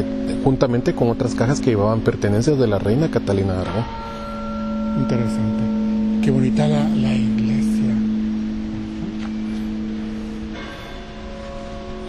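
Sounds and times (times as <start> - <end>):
droning held music notes: 0.0 - 12.0.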